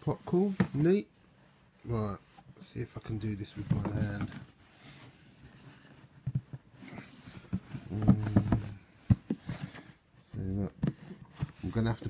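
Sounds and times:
low vocal hum: 0:07.8 - 0:08.8
cardboard box lid knocking: 0:08.0 - 0:09.4.

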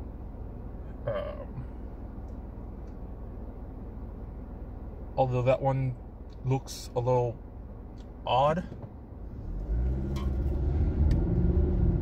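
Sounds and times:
road rumble inside car: 0:00.0 - 0:12.0
car engine accelerating: 0:09.2 - 0:12.0.

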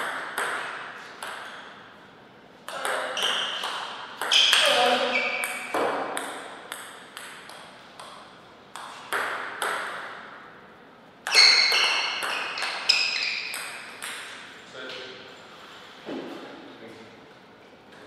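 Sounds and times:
table tennis ball pinging: 0:00.0 - 0:01.9, 0:02.6 - 0:10.4, 0:11.2 - 0:14.5.

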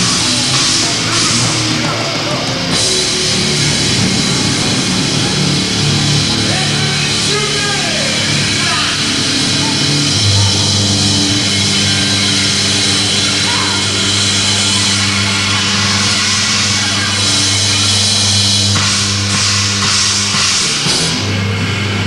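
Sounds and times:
crashing cymbals: 0:00.0 - 0:22.0
live rock band playing: 0:00.0 - 0:22.0.

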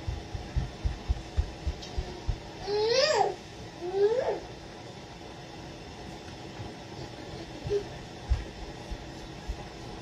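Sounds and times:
soft low thumps: 0:00.0 - 0:02.8, 0:07.6 - 0:10.0
kitchen room hum: 0:00.0 - 0:10.0.

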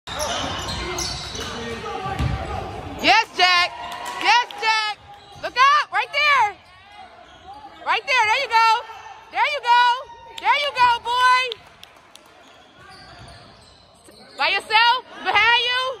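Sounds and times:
high-pitched shoe squeals: 0:00.1 - 0:01.7, 0:06.6 - 0:07.9, 0:12.4 - 0:14.6.

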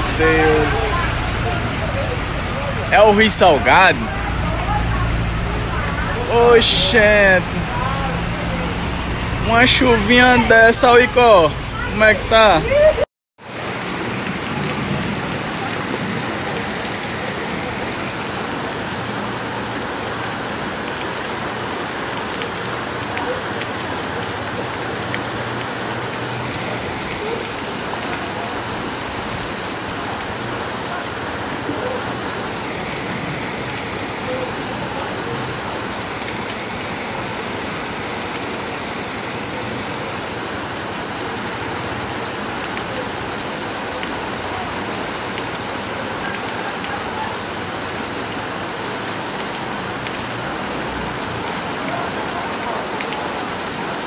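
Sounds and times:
heavy rain pouring: 0:00.0 - 0:54.0.

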